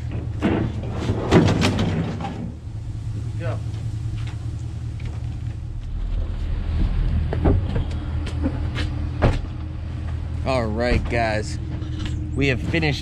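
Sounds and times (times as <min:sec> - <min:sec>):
truck engine idling: 0:00.0 - 0:13.0.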